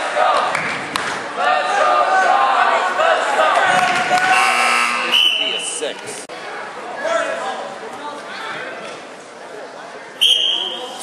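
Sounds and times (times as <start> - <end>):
spectators shouting: 1.2 - 5.8
electronic scoreboard buzzer: 4.3 - 5.1.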